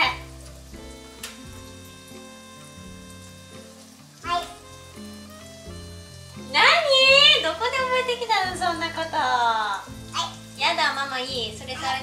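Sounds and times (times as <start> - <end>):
oil sizzling: 0.0 - 12.0
soft background music: 0.0 - 12.0.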